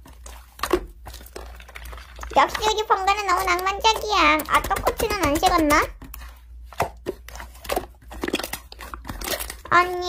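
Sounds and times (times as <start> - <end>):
slime squishing with pops: 0.0 - 10.0.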